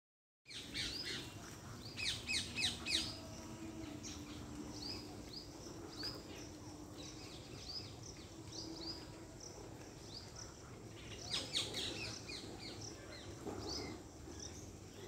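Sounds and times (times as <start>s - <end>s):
small birds chirping: 0.5s - 15.0s
faint low hum: 0.7s - 15.0s.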